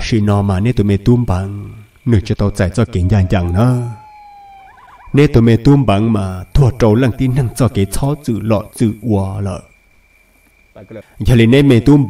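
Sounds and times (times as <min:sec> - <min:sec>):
man narrating: 0:00.0 - 0:04.0, 0:05.2 - 0:09.7, 0:10.8 - 0:12.0
faint steady high tone: 0:02.6 - 0:05.5.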